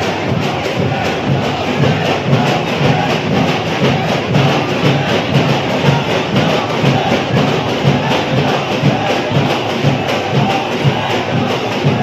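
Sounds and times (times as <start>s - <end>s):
large crowd noise: 0.0s - 12.0s
procession drums beating: 0.0s - 12.0s.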